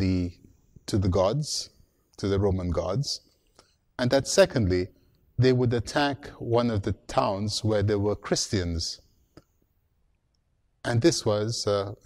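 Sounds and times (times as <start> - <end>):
man speaking: 0.0 - 3.3, 4.0 - 9.0, 10.8 - 12.0.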